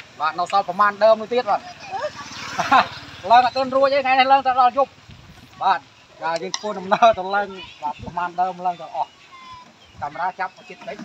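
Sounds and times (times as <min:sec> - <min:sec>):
man speaking: 0:00.1 - 0:01.6, 0:03.2 - 0:04.9, 0:05.6 - 0:09.1, 0:10.0 - 0:11.0.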